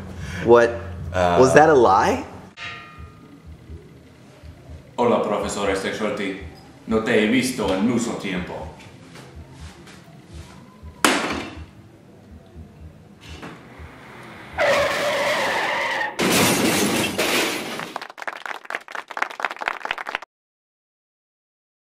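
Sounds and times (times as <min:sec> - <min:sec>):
tyres screeching skid: 0:13.6 - 0:17.2
loud crash: 0:13.7 - 0:18.0
falling debris clattering: 0:16.2 - 0:18.1.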